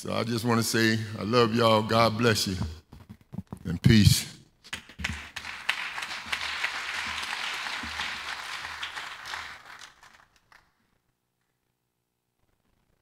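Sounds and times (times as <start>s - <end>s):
crowd applauding: 4.7s - 10.8s.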